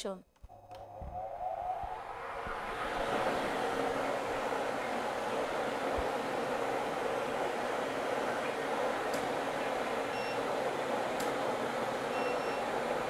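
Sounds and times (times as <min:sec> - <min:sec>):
air blower rushing: 0:00.7 - 0:13.0.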